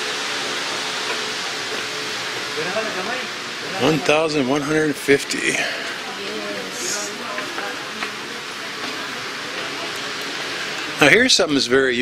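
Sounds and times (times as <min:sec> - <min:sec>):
shop background hiss: 0:00.0 - 0:12.0.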